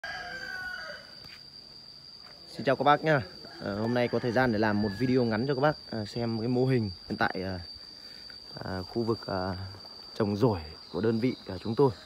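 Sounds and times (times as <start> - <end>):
rooster crowing: 0.0 - 1.3, 3.2 - 5.9
high-pitched insect drone: 0.0 - 12.0.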